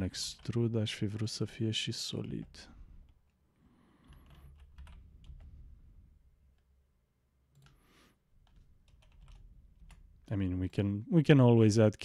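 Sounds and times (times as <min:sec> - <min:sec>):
faint keyboard typing: 0:00.0 - 0:06.8, 0:07.5 - 0:10.3.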